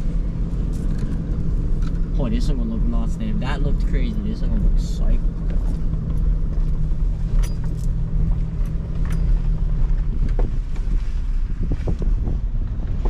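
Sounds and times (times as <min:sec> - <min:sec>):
engine and road rumble: 0:00.0 - 0:13.0
steady engine hum: 0:00.0 - 0:13.0
knocks and rattles from cab: 0:05.4 - 0:13.0.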